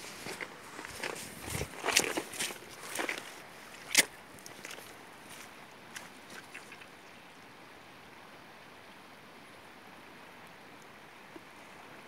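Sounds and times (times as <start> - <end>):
footsteps on wet grass: 0.0 - 6.8.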